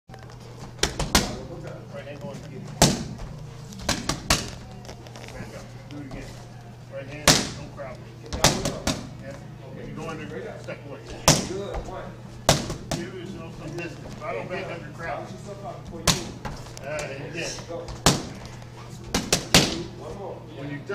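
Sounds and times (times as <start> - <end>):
boxing gloves hitting padded mitts: 0.7 - 1.6, 2.7 - 4.7, 8.3 - 9.1, 11.1 - 13.1, 17.8 - 18.4, 19.0 - 19.9.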